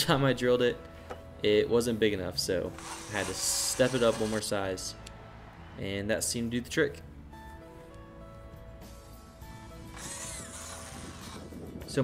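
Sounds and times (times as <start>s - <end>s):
background music: 0.0s - 12.0s
cordless drill boring through plastic: 2.8s - 4.5s, 9.8s - 11.6s.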